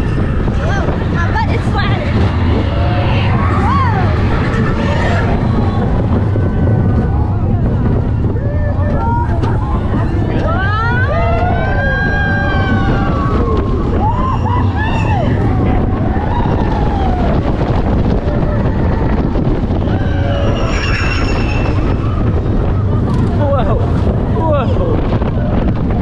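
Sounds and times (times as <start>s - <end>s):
roller coaster train rumble: 0.0s - 26.0s
wind on microphone: 0.0s - 26.0s
riders whooping: 2.1s - 24.3s.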